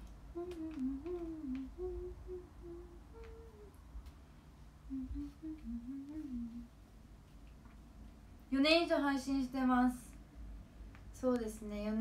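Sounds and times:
faint light clicks: 0.0s - 1.8s, 3.1s - 4.2s
woman humming while eating: 0.3s - 3.8s, 4.8s - 6.7s.

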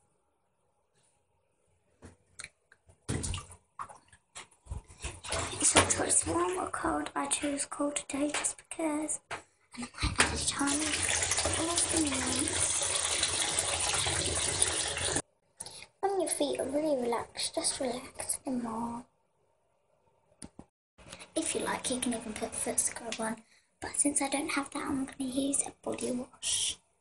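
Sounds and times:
bathwater splashing: 3.0s - 6.9s, 10.0s - 15.2s.

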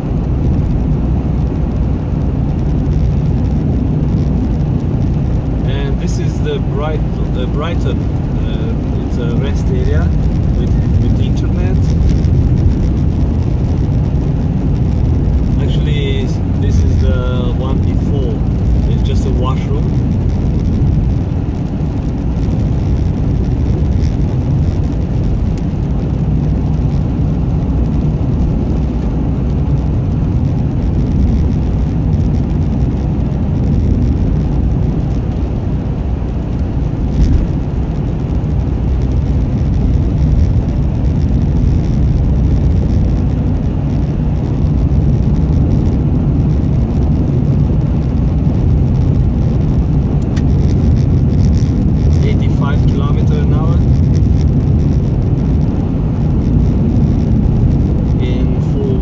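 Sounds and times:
car cabin road and engine rumble: 0.0s - 59.0s.

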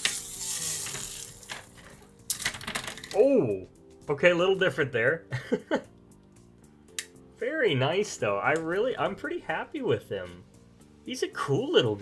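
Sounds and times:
ball spinning with rattling whir: 0.0s - 1.8s
plastic ball clacking on tray: 0.0s - 3.2s.

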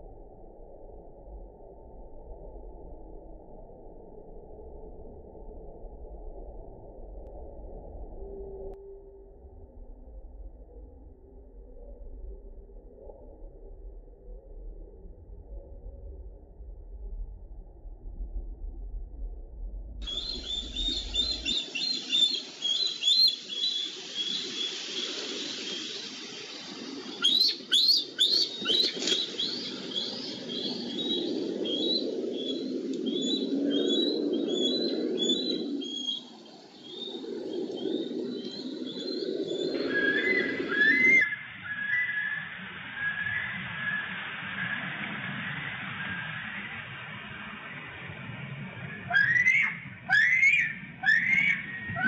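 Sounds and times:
low rushing noise: 7.0s - 41.7s
eagles calling: 20.0s - 32.6s, 39.0s - 42.4s, 49.0s - 52.0s.

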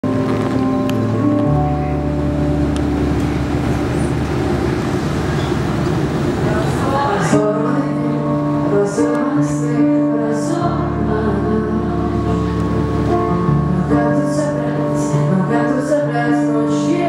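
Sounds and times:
piano chords: 0.0s - 17.0s
woman singing: 6.8s - 12.5s, 13.5s - 17.0s.

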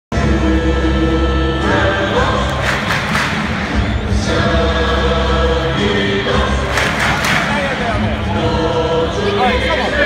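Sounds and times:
crowd singing along: 0.1s - 10.0s
music over public address: 0.1s - 10.0s
stadium crowd noise: 0.1s - 10.0s.

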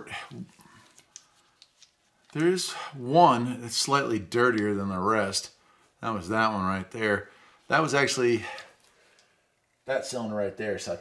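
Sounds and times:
man talking: 0.0s - 0.6s, 2.3s - 8.8s, 9.8s - 11.0s.

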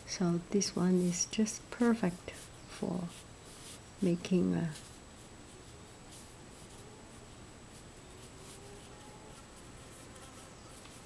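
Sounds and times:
brush swishing across paper: 1.0s - 11.0s.

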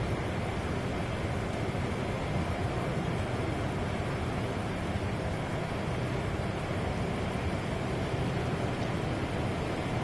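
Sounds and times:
steady outdoor rushing noise: 0.0s - 10.0s.

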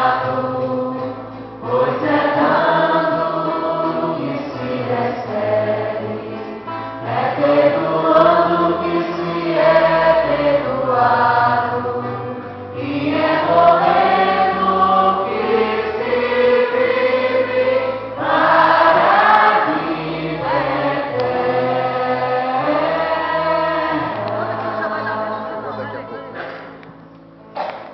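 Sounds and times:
choir singing a hymn: 0.0s - 26.7s
instrumental bass accompaniment: 0.0s - 27.9s.

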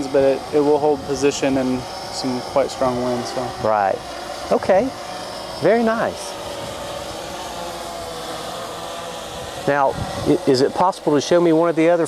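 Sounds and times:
wind hiss on microphone: 0.0s - 7.6s, 8.4s - 12.0s
quadcopter motors whirring: 0.0s - 12.0s.

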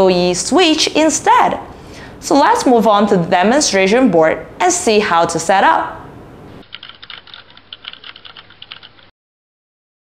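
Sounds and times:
computer keyboard typing: 6.6s - 9.1s.

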